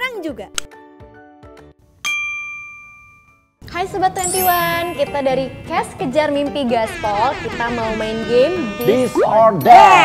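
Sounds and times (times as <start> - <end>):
bell ding: 2.0 - 3.6.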